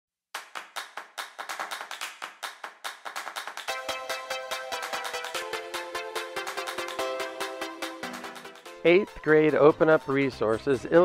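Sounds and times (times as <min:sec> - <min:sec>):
rhythmic handclaps: 0:00.3 - 0:11.0.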